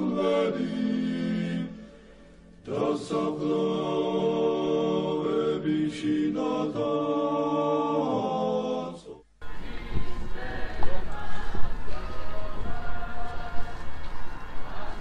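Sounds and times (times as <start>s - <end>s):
voices chanting long held notes: 0.0s - 15.0s.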